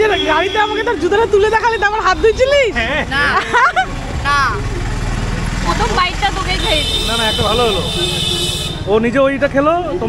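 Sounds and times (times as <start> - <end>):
low rumble of road traffic: 0.0 - 10.0
voices exclaiming and chatting: 0.0 - 10.0.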